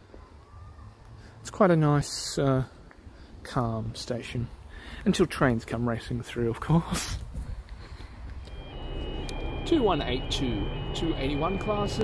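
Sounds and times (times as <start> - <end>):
thin high tones: 8.5 - 12.0
freight train rumbling: 8.6 - 12.0.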